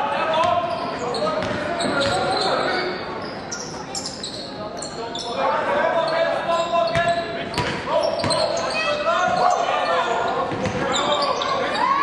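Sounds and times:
voices in a hall: 0.0 - 12.0
basketball bouncing on gym floor: 1.4 - 2.3, 7.0 - 8.4.

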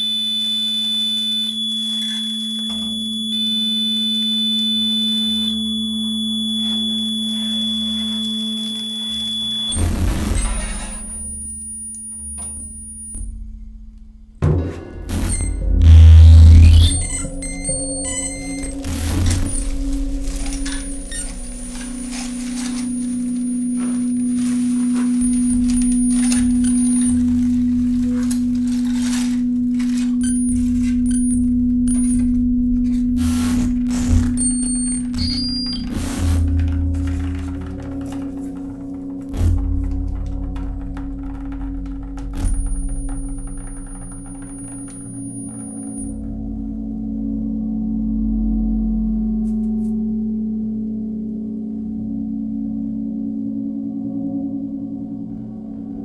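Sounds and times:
high sine-like tone: 0.0 - 13.9, 15.1 - 53.3
low drone: 1.4 - 56.0
sharp clicks and knocks: 14.4 - 46.1.

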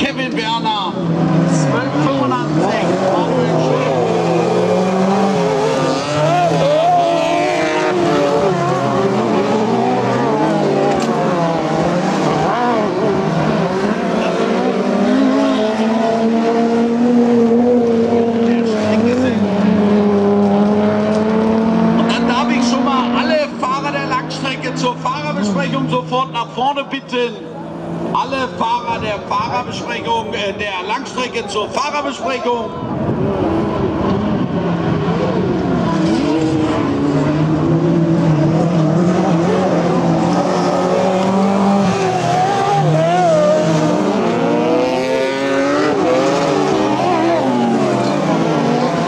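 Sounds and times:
racing car engines: 0.0 - 49.0.

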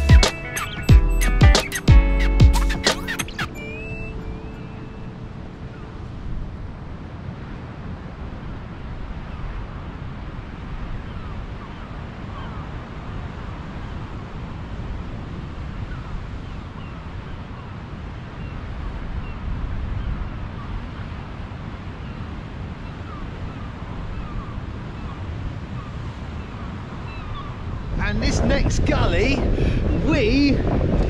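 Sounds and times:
held music notes: 0.0 - 6.3
faint short chirps: 0.4 - 5.0
wind on microphone: 2.7 - 31.0.

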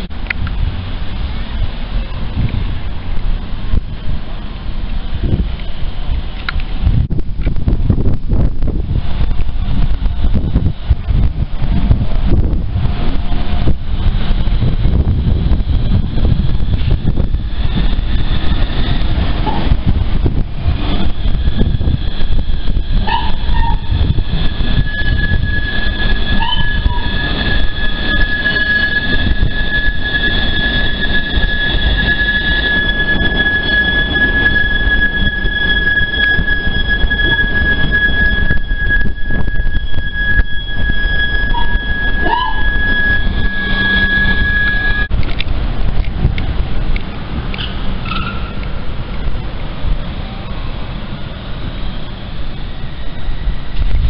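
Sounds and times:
tram low rumble: 0.0 - 54.0
tram wheels squealing: 7.9 - 54.0
short wheel squeaks: 20.8 - 45.1, 47.6 - 48.7.

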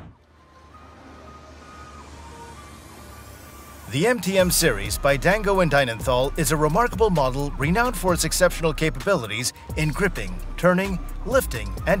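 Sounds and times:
soft ambient drone music: 0.1 - 12.0.

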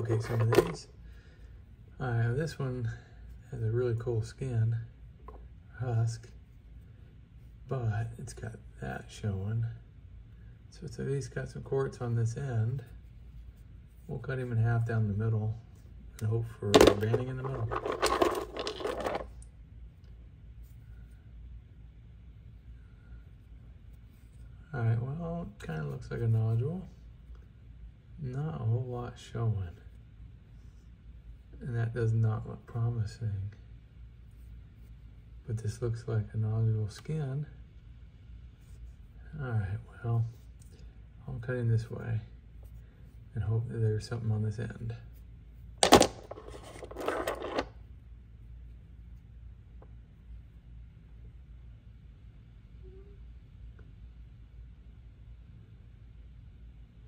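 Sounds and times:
faint low room hum: 0.0 - 57.0
stones clattering in plastic tub: 16.8 - 19.2, 45.8 - 47.7.

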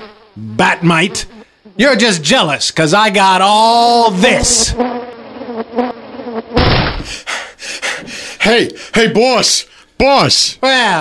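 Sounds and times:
pitched buzz in bursts: 0.0 - 9.2.

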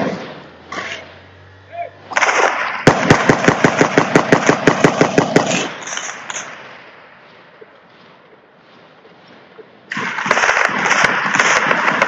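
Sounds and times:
automatic rifle fire: 2.1 - 6.6, 9.9 - 12.0.

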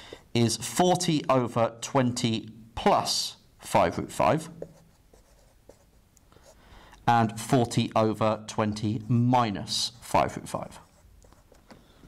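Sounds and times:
marker pen writing on whiteboard: 4.4 - 6.6, 10.0 - 11.9.

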